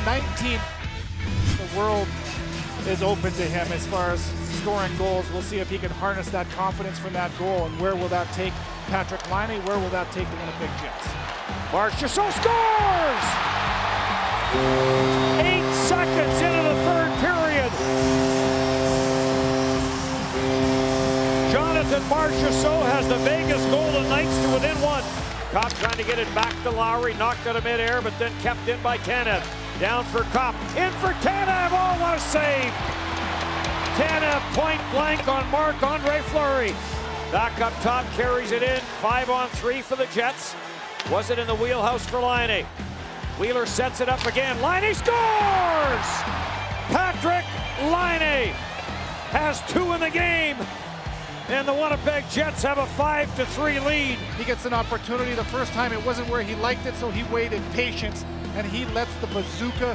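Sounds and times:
arena crowd din: 0.0s - 59.9s
background music: 0.0s - 59.9s
commentator calling a goal: 11.7s - 13.4s, 14.5s - 19.8s, 20.5s - 32.8s, 33.8s - 42.7s, 43.3s - 48.6s, 49.3s - 50.6s, 51.5s - 59.9s
goal horn blasts: 14.3s - 26.6s, 29.8s - 37.8s.

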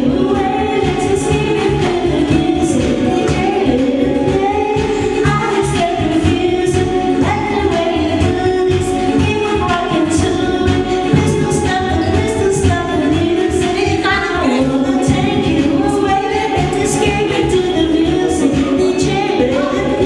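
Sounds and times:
pop backing track: 0.0s - 20.0s
woman singing karaoke: 0.0s - 20.0s.

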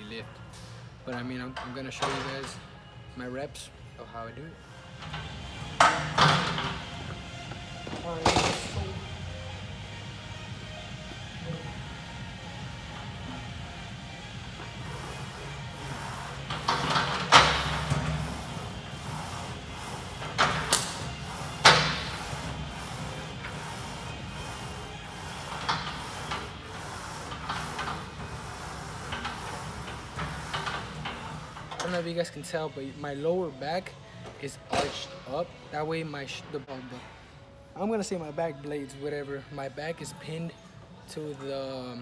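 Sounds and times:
background music with steady beat: 0.0s - 42.0s.

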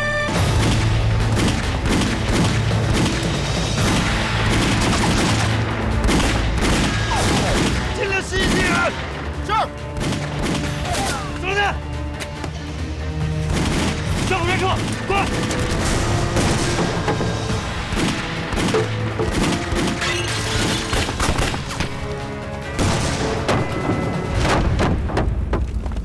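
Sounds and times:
rifle and machine-gun fire: 0.3s - 8.9s, 10.0s - 10.8s, 13.4s - 21.8s
low musical drone: 14.8s - 24.8s.

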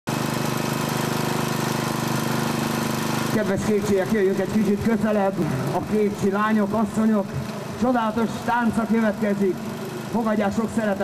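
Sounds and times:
vehicle engine idling: 0.1s - 11.0s.

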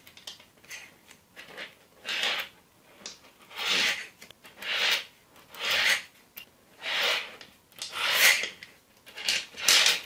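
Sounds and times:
magnetic balls rasping by hand: 0.6s - 10.0s.

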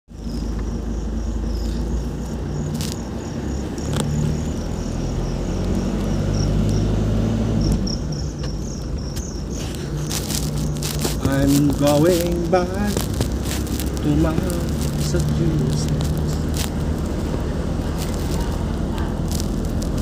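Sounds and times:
crickets chirping: 0.1s - 20.0s
vehicle engine humming: 0.1s - 20.0s.

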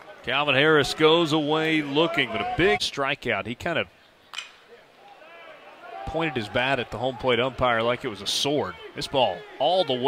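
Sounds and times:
faint crowd noise: 0.0s - 10.0s.

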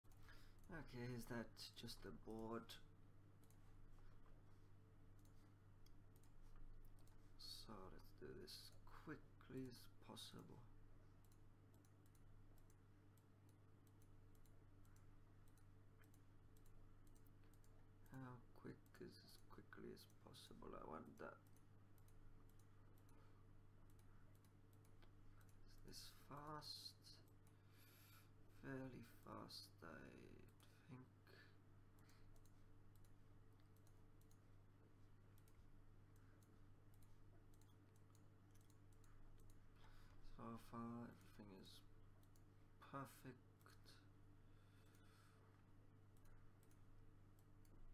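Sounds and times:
low electrical hum: 0.0s - 47.9s
computer mouse clicks: 3.4s - 4.4s, 5.1s - 7.5s, 11.2s - 23.2s, 23.8s - 26.2s, 32.0s - 34.6s, 35.3s - 40.3s, 42.2s - 42.5s, 46.1s - 47.9s.

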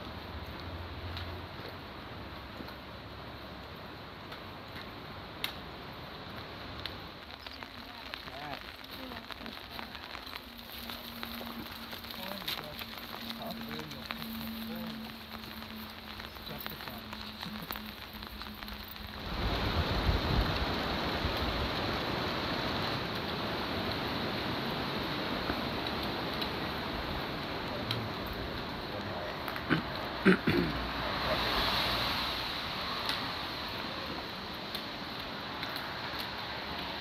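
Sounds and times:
rain falling: 0.0s - 37.0s
raindrops ticking: 0.0s - 37.0s
steady background hiss: 0.0s - 37.0s.

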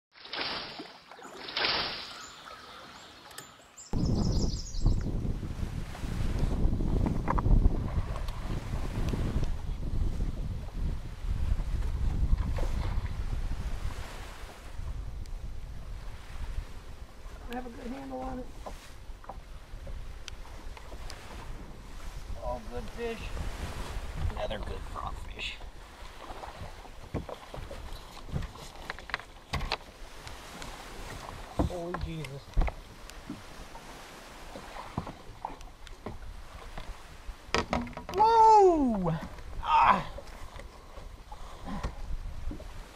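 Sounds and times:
wind buffeting microphone: 3.9s - 42.9s
fishing gear knocking and clattering: 37.5s - 38.2s.

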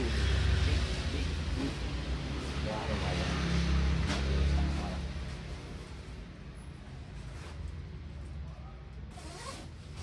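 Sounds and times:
jacket zipper: 9.1s - 10.0s.

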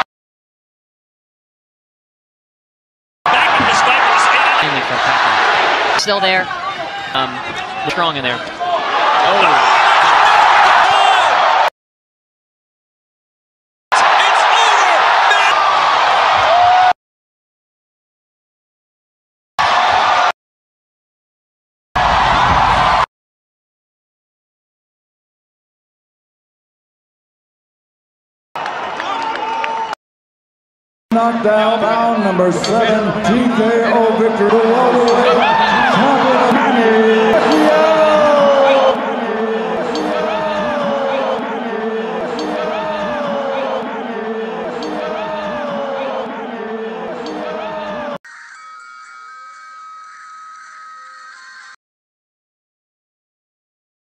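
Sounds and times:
amplified voice echoing: 31.1s - 47.2s.

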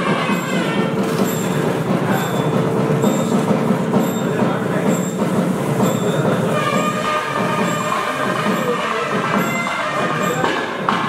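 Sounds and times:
fast dense drumming: 0.0s - 11.0s
held reed note: 5.8s - 11.0s.

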